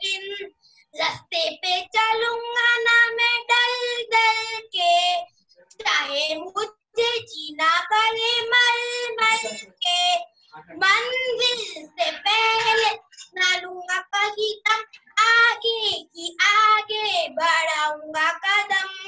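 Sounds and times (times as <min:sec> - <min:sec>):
boy singing unaccompanied: 0:00.0 - 0:19.0.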